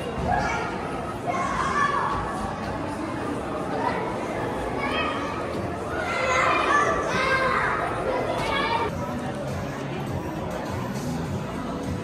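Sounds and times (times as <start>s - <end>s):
children calling out and chattering: 0.0s - 11.9s.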